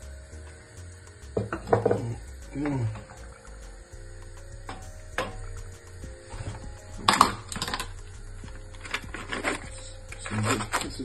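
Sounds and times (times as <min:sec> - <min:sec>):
faint background music: 0:00.0 - 0:11.0
kitchen items clattering: 0:01.4 - 0:03.3, 0:06.2 - 0:11.0.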